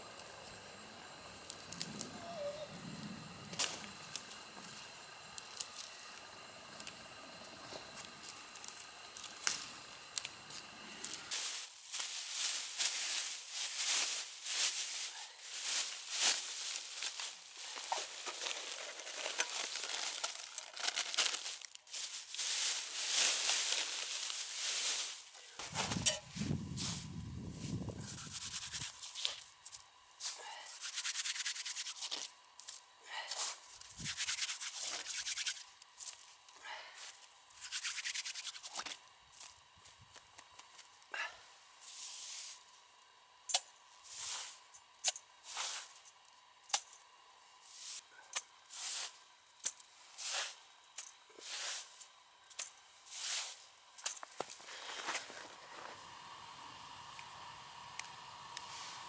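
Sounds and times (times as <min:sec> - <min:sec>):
dry grass tearing and rustling: 0:08.2 - 0:29.4
snow crunching and scraping: 0:11.3 - 0:20.2, 0:20.9 - 0:29.4, 0:51.4 - 0:52.0, 0:54.4 - 0:56.1.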